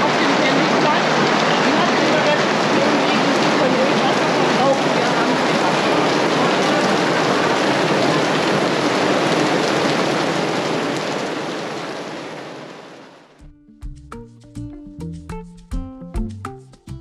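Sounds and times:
heavy rain on stone paving: 0:00.0 - 0:13.4.

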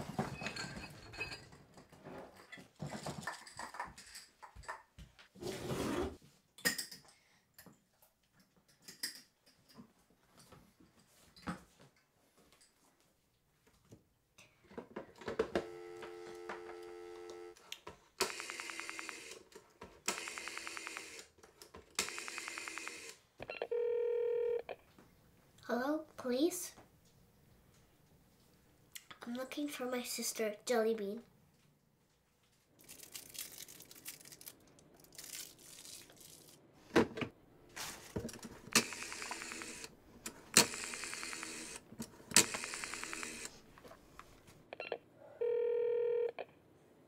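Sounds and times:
dial tone: 0:15.6 - 0:17.6, 0:23.5 - 0:24.8, 0:44.8 - 0:46.5
rotary dial whirring and clicking: 0:18.2 - 0:19.5, 0:20.1 - 0:21.3, 0:22.0 - 0:23.2, 0:38.7 - 0:43.6.

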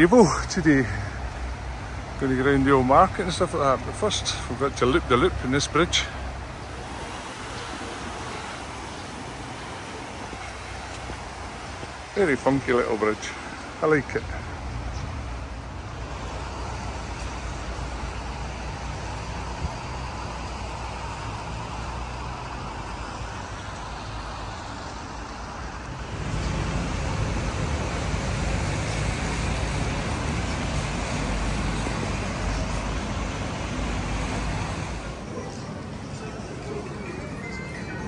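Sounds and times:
cars passing on wet road: 0:00.0 - 0:36.2
low traffic rumble: 0:00.0 - 0:38.0.

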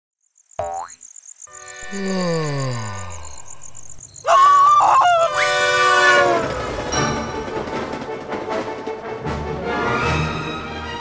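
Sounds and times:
cartoon steam locomotive whistle: 0:05.1 - 0:07.2
orchestral theme music: 0:06.0 - 0:11.0.

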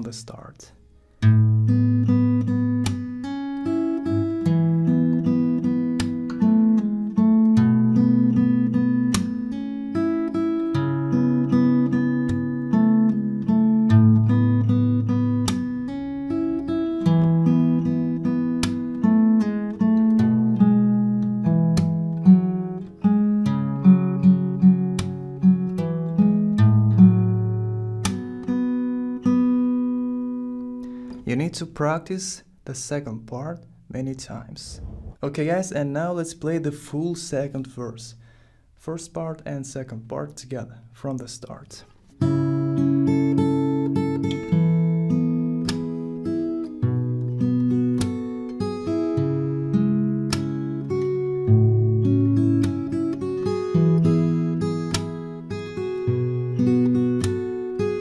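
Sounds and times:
fingerstyle acoustic guitar: 0:00.1 - 0:31.9, 0:41.5 - 0:58.0.

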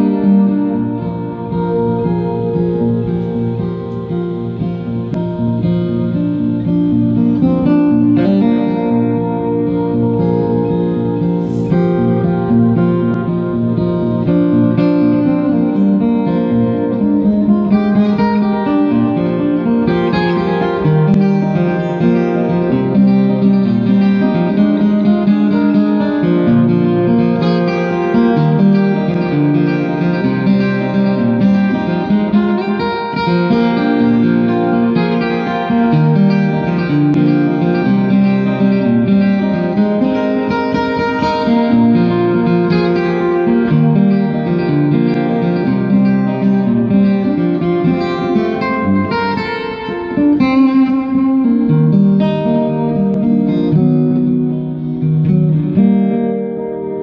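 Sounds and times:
acoustic guitar plucked: 0:00.0 - 0:57.0.

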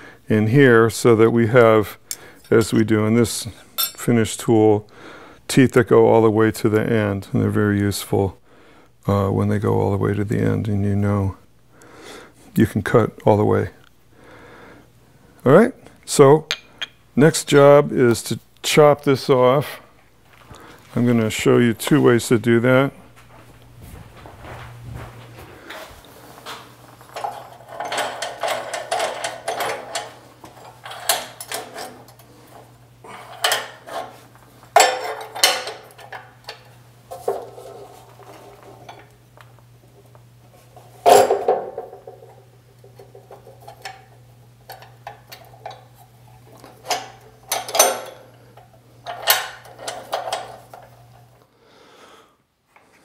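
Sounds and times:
steady low hum: 0:00.0 - 0:53.0
metal clinks and rattles: 0:03.8 - 0:04.0, 0:27.0 - 0:32.3.

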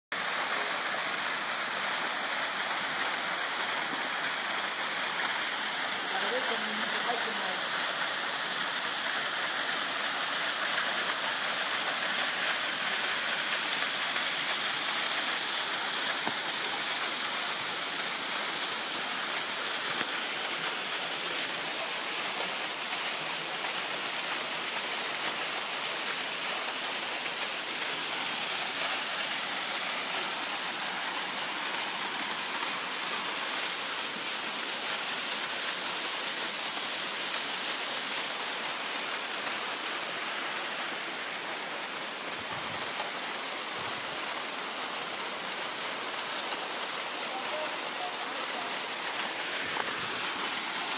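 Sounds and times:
waterfall rushing: 0:00.1 - 0:50.9.

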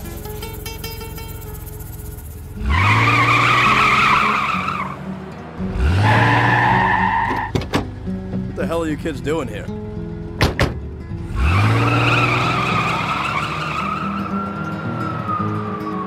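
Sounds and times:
car tyres squealing: 0:00.0 - 0:08.5, 0:11.1 - 0:16.0
background music: 0:00.0 - 0:16.0
car engine revving: 0:00.0 - 0:16.0.

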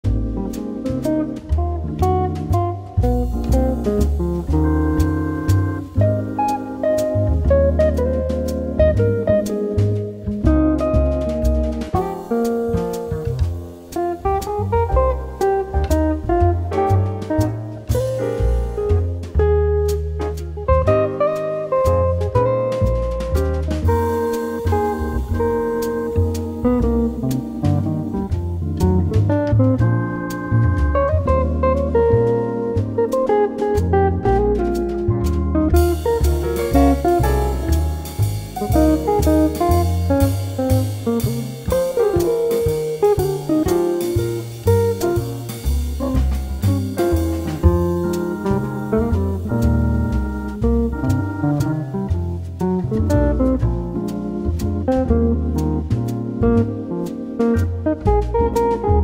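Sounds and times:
jazz quartet playing: 0:00.0 - 0:59.0.

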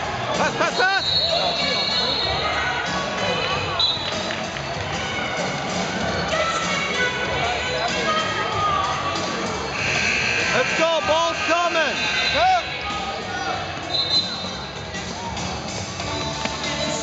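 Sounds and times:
murmur of voices: 0:00.0 - 0:17.0
sneaker squeaks: 0:00.9 - 0:02.5, 0:13.9 - 0:14.6.

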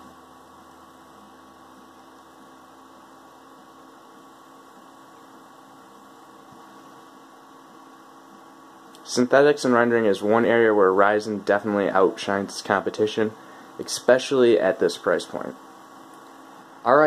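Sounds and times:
computer hum: 0:00.0 - 0:17.0.

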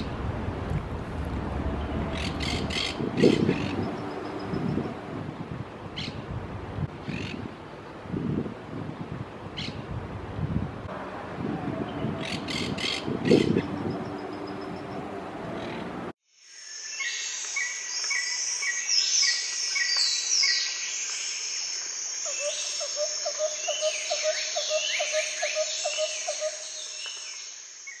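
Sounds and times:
outdoor noise: 0:00.0 - 0:28.0
low pulsing calls: 0:00.8 - 0:05.3, 0:10.9 - 0:16.1
birds chirping and whistling: 0:01.8 - 0:05.0
high insect-like hiss: 0:16.3 - 0:24.5.

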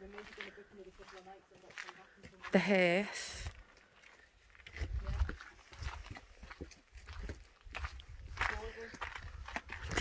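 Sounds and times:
footsteps on stone and earth path: 0:00.0 - 0:10.0.

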